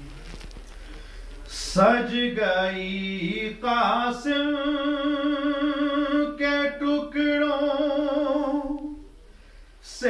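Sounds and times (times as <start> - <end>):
quick breath: 9.2 - 9.8.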